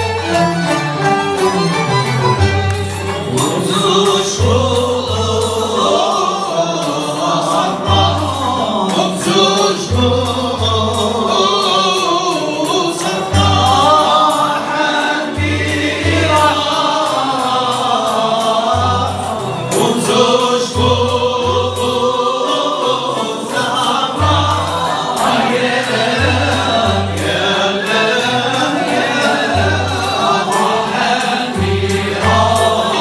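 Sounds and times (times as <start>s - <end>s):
bowed violins: 0.0s - 6.9s
men's chorus singing: 0.0s - 33.0s
oud playing: 0.0s - 33.0s
qanun playing: 0.0s - 33.0s.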